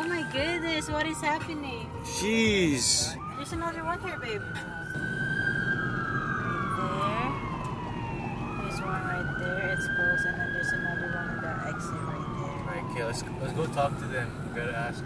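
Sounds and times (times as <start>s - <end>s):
road noise inside car: 0.0s - 15.0s
police siren wailing: 2.0s - 15.0s.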